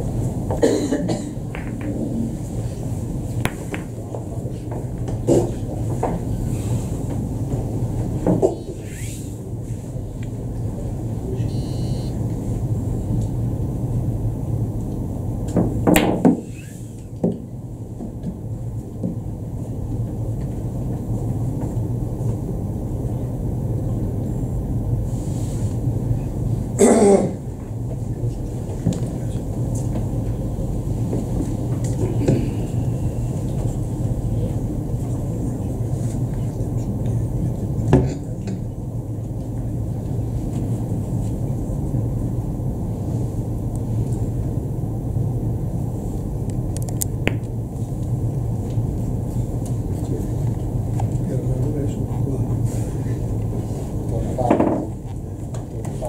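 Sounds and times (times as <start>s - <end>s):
low hum of hall: 0.0s - 56.0s
billiard balls knocking: 1.5s - 2.3s, 3.4s - 4.3s
balls rolling across table: 1.5s - 2.4s.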